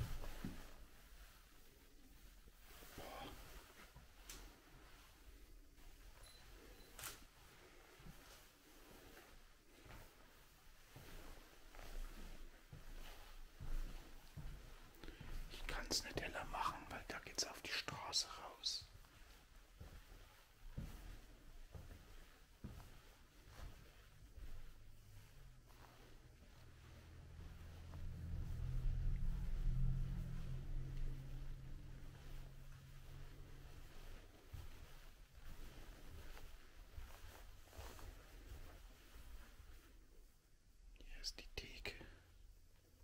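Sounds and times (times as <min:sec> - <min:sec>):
faint footsteps: 0:00.0 - 0:40.3
hushed whispering: 0:02.8 - 0:03.6, 0:15.5 - 0:18.9, 0:41.0 - 0:42.3.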